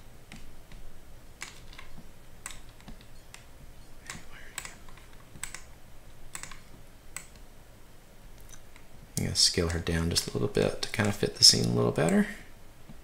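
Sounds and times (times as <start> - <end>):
faint low hum: 0.0 - 13.0
computer clicks: 1.4 - 5.7, 6.3 - 7.4.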